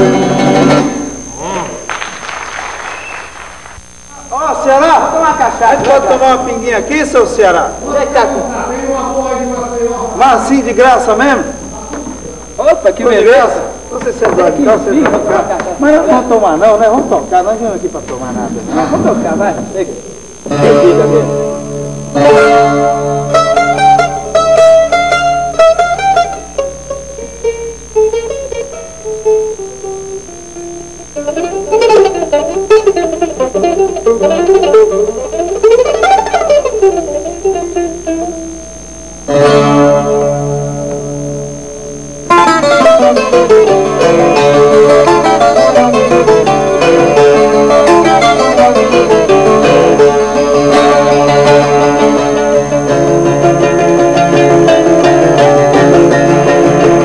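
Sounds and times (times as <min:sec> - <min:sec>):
acoustic guitar: 0:00.0 - 0:03.8, 0:20.4 - 0:57.0.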